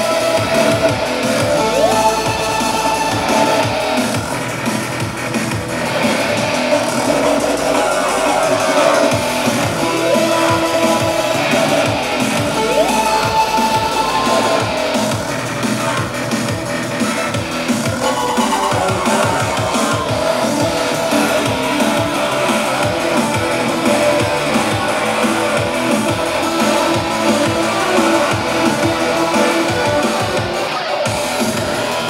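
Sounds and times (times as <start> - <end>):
electronic synth music: 0.0 - 32.0
rising synth pitch sweeps: 0.0 - 32.0.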